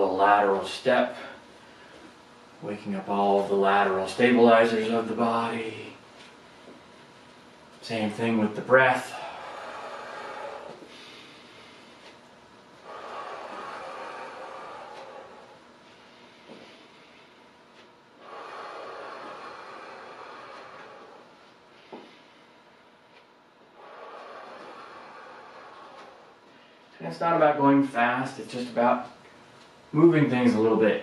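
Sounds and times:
man breathing deeply: 0:09.0 - 0:12.2, 0:12.8 - 0:22.9, 0:23.7 - 0:27.0.

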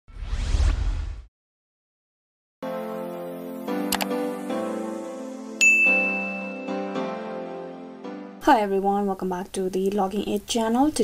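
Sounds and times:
rising whoosh sweep: 0:00.1 - 0:01.3.

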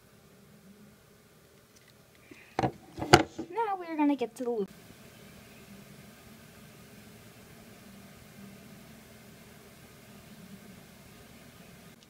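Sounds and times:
faint room tone hiss: 0:00.0 - 0:12.0.

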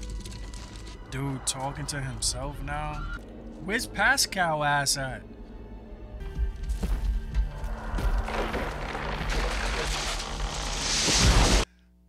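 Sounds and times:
dark orchestral score low notes: 0:00.0 - 0:09.3.

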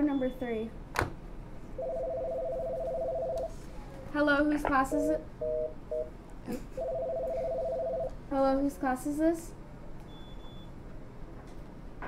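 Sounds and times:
telephone ringback tone: 0:01.8 - 0:03.5, 0:04.9 - 0:06.1, 0:06.8 - 0:08.1.

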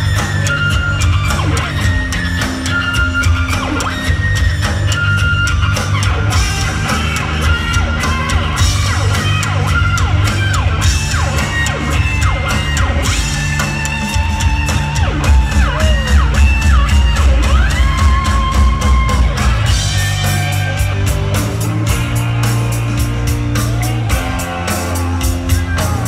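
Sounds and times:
drums: 0:00.0 - 0:26.0
heavy bass: 0:00.0 - 0:26.0.

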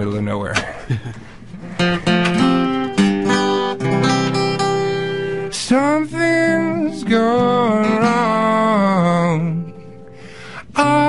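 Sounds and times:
acoustic guitar picked and strummed: 0:00.6 - 0:11.0.

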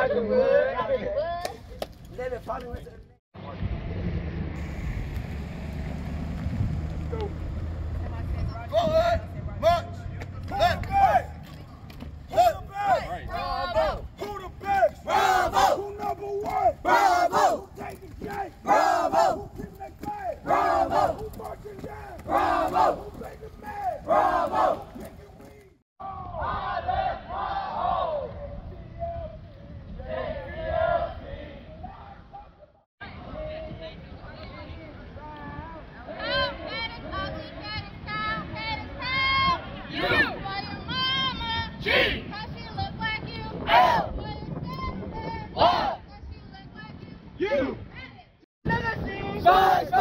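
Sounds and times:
group chanting marching cadence: 0:12.2 - 0:28.4, 0:49.4 - 0:50.0.

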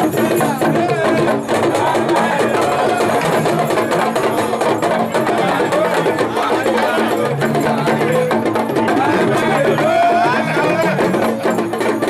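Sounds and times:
talking drums beaten in fast rhythm: 0:00.0 - 0:12.0.

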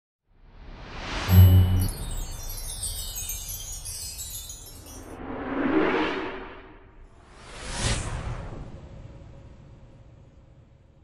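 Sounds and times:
cascade of high chime tones: 0:01.3 - 0:06.5.

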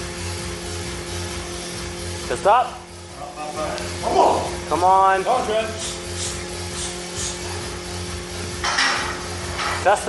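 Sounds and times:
steady low hum: 0:00.0 - 0:10.0
man breathing with short hisses: 0:06.0 - 0:07.8.

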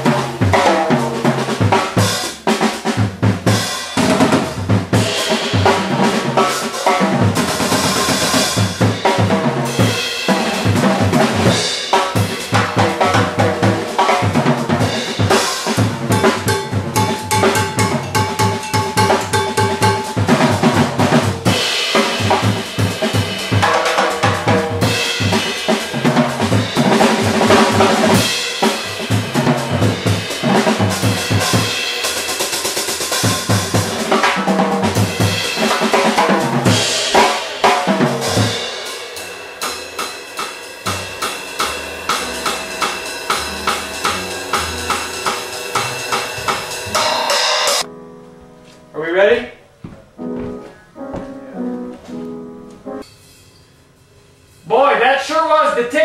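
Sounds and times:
busy drum kit: 0:00.0 - 0:53.1
jazz trio playing: 0:00.0 - 0:53.1.

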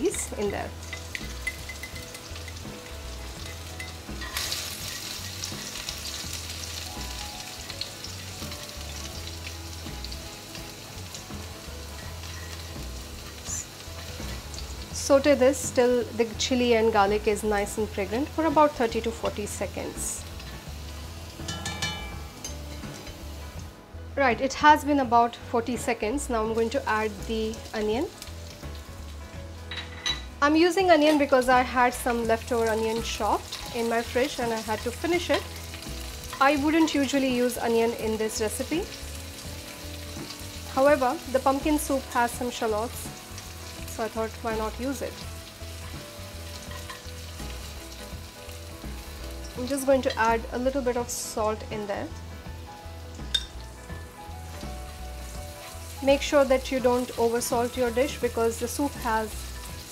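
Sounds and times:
background music with plucked strings: 0:00.0 - 0:59.9
garlic frying in oil: 0:00.0 - 0:59.9.

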